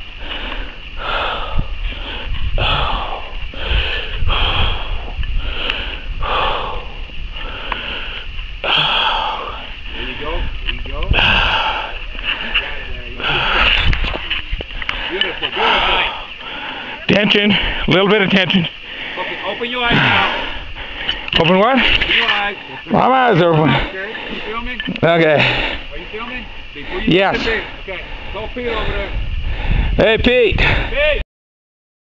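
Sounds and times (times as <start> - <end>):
man breathing hard: 0.0 - 17.9, 18.7 - 22.9, 23.6 - 31.1
wind rumble on microphone: 0.0 - 18.0, 18.6 - 31.2.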